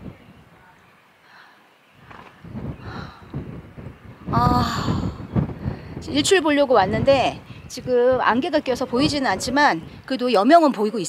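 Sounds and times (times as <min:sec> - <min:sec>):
wind rumble on microphone: 0:00.0 - 0:01.0, 0:01.9 - 0:10.7.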